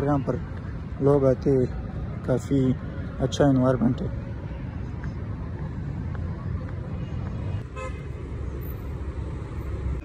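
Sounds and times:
vehicle horn toot: 7.7s - 8.1s.

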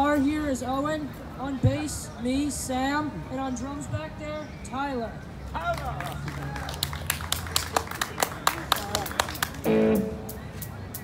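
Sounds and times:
audience clapping: 5.6s - 9.7s.

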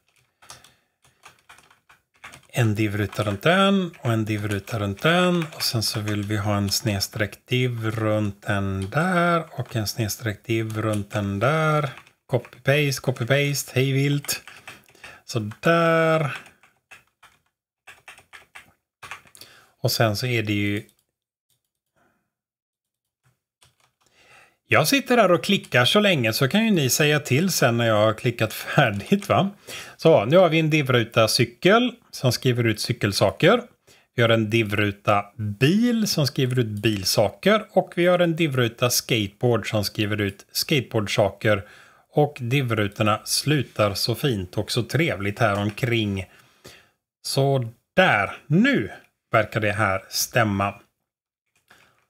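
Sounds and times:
computer keyboard keystrokes: 0.0s - 7.0s, 16.2s - 19.4s, 23.6s - 24.1s.

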